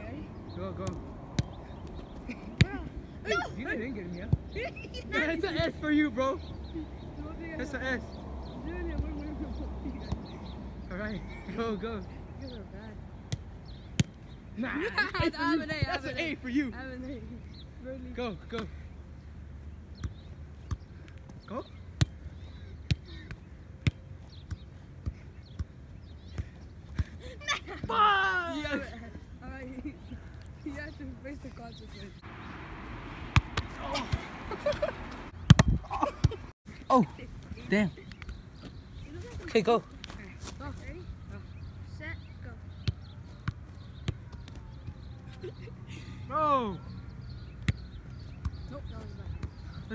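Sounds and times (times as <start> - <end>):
soccer ball thuds: 32.2 - 36.5.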